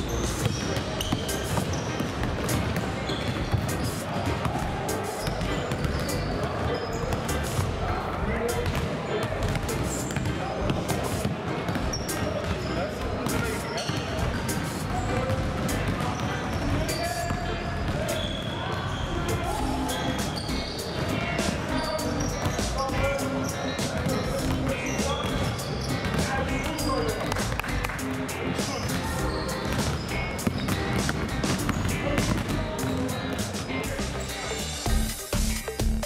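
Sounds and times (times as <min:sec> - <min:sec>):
voices: 0:00.0 - 0:34.9
basketballs bouncing on wooden floor: 0:00.3 - 0:07.4, 0:29.6 - 0:33.4.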